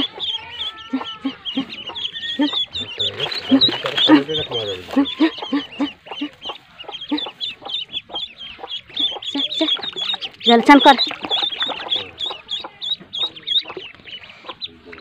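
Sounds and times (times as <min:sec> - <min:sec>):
ducklings peeping: 0:00.0 - 0:15.0.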